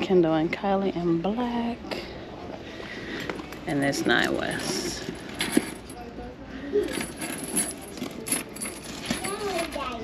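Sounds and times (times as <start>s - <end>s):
faint voices: 0.0s - 10.0s
metal bag hardware clinking: 6.9s - 10.0s.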